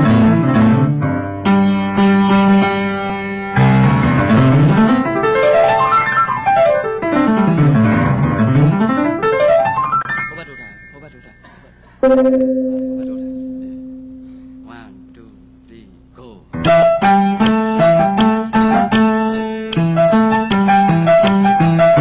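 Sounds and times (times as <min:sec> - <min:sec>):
grand piano playing: 0:00.0 - 0:15.6, 0:16.5 - 0:22.0.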